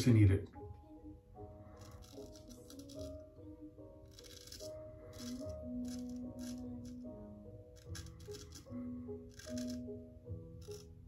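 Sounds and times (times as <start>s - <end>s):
quiet background music: 0.0s - 11.0s
razor scraping stubble: 1.8s - 3.2s, 4.1s - 7.1s, 7.7s - 9.9s, 10.6s - 10.9s.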